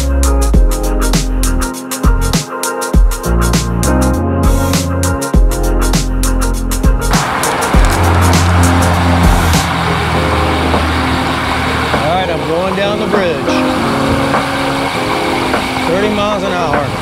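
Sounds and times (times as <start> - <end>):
background music with beat: 0.0 - 17.0
wind and road noise: 6.9 - 17.0
passing car traffic: 7.0 - 17.0.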